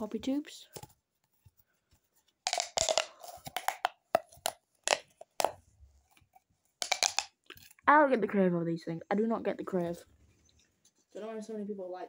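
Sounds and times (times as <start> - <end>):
plastic pop tubes crackling: 2.4 - 7.9.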